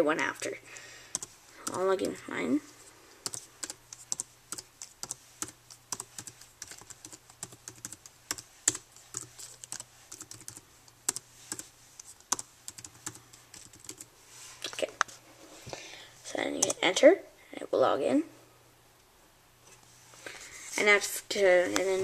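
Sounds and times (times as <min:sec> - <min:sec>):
laptop keyboard typing: 0:01.1 - 0:02.2, 0:03.2 - 0:14.1.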